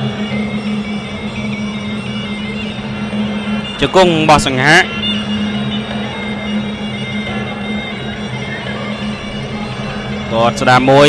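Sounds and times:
oboe holding a steady tone: 0.0s - 11.0s.

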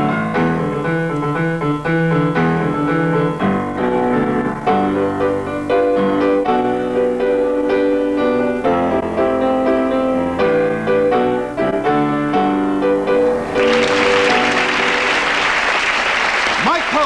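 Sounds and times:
grand piano playing chords: 0.0s - 16.3s
audience applause: 13.2s - 17.0s.

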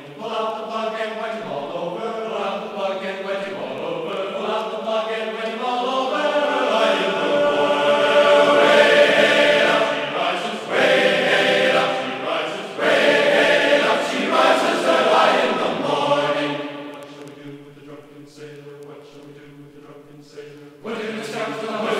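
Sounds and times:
group of voices singing: 0.0s - 21.9s.

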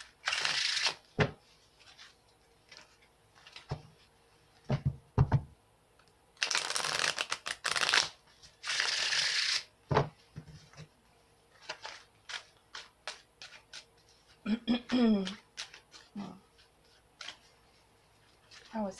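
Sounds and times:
rapid card shuffling: 6.4s - 9.7s, 11.6s - 14.4s, 15.2s - 18.9s.

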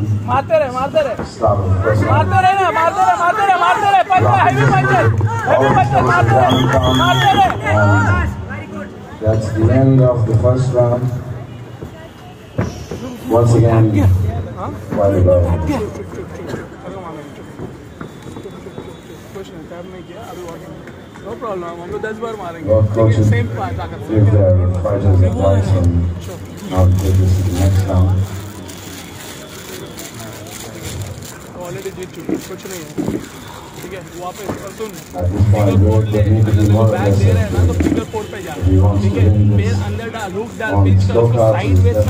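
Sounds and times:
people talking indistinctly: 0.0s - 42.0s.

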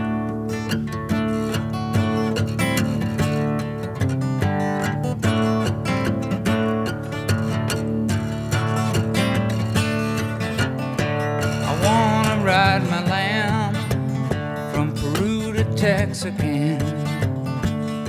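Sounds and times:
acoustic guitar strumming: 0.0s - 18.0s.

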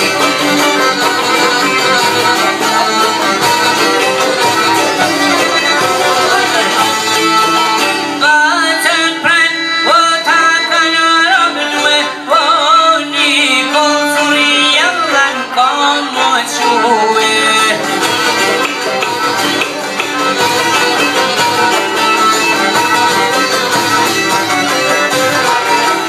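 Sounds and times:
plucked lutes strumming and droning: 0.0s - 26.0s
violin melody: 0.0s - 26.0s.

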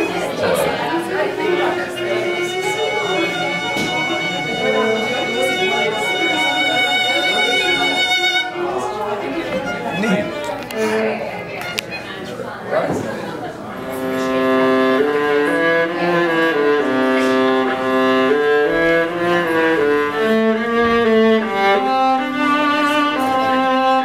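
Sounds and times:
violin long bowed note: 0.0s - 11.8s, 13.7s - 24.0s.

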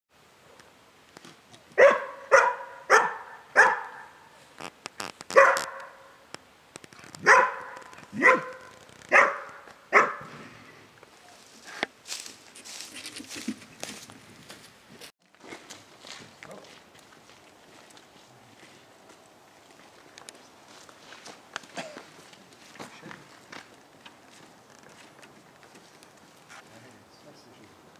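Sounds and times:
dog barking: 1.8s - 4.2s, 5.3s - 6.1s, 7.2s - 10.3s.

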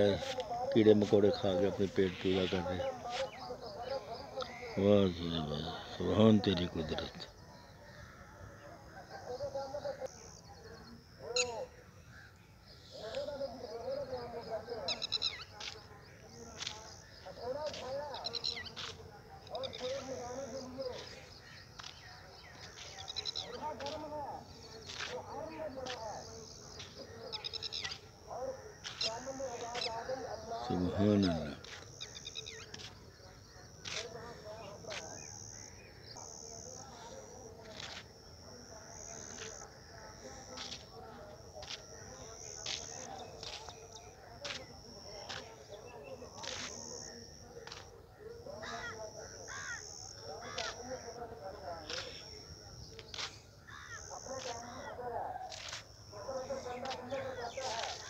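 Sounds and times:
birds chirping: 0.0s - 58.0s
crows cawing: 48.6s - 50.8s, 53.2s - 54.9s.

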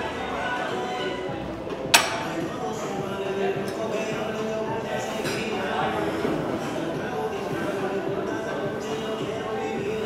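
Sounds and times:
gym music: 0.0s - 10.0s
voices: 0.0s - 10.0s.

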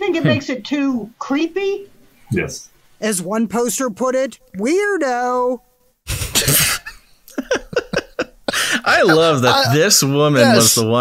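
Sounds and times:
man laughing: 7.3s - 10.8s.

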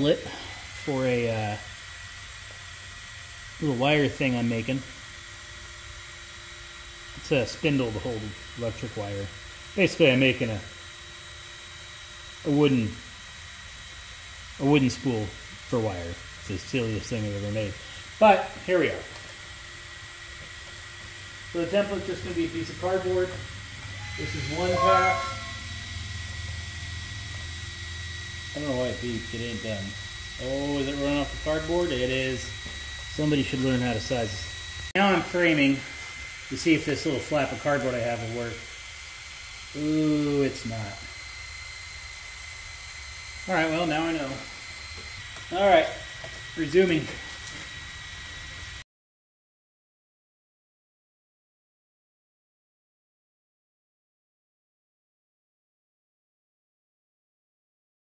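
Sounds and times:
laser engraver whirring and whining: 0.0s - 48.8s.

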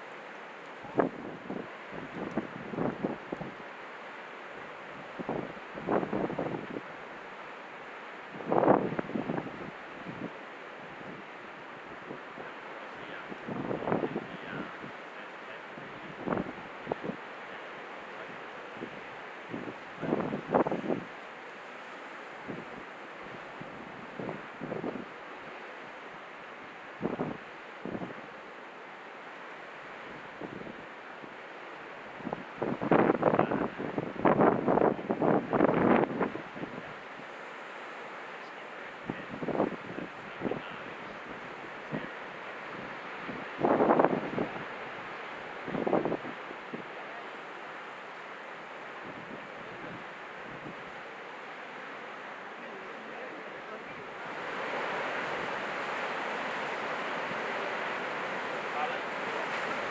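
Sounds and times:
surf on rough sea: 0.0s - 59.9s
wind buffeting microphone: 0.8s - 3.6s, 5.2s - 6.8s, 8.4s - 10.3s, 13.3s - 14.9s, 15.8s - 17.2s, 18.8s - 21.1s, 22.4s - 25.1s, 27.0s - 28.2s, 32.2s - 36.9s, 39.1s - 42.1s, 42.7s - 46.9s, 49.0s - 50.9s.

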